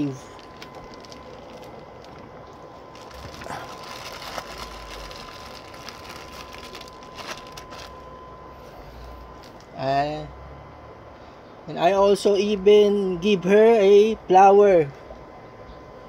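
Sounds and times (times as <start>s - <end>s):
plastic bag rustling: 0.0s - 8.1s.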